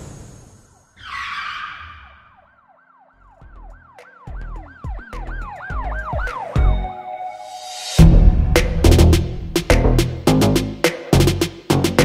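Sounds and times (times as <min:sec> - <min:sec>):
whoosh hit: 0:07.9 - 0:10.1
heavy low hit: 0:08.0 - 0:10.3
low bass thumps: 0:08.0 - 0:12.0.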